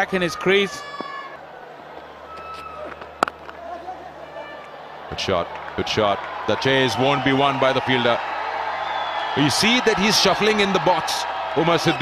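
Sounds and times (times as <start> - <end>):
faint stadium background: 0.0 - 12.0
cricket bat striking ball: 2.8 - 3.6.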